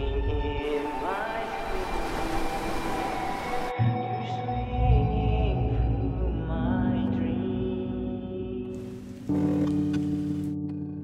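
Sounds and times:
steady wash of noise: 0.6s - 3.7s.

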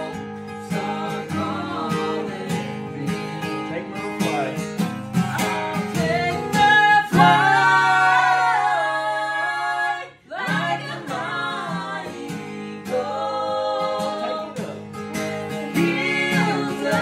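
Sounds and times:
voices singing gospel in harmony: 0.0s - 4.0s, 5.2s - 17.0s
acoustic guitar strumming: 0.0s - 17.0s.

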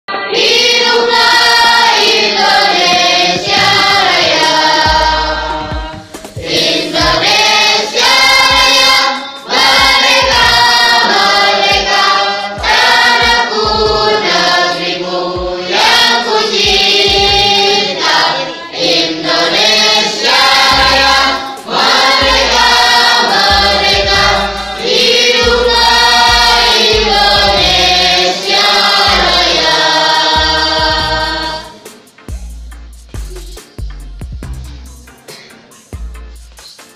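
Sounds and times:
men singing in unison: 0.6s - 31.8s
low thuds: 2.8s - 6.1s.

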